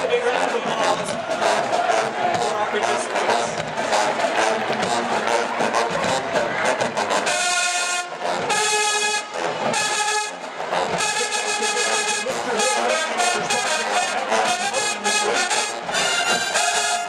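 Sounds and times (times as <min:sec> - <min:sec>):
marching band brass: 0:00.0 - 0:17.0
drum hits: 0:00.7 - 0:07.4.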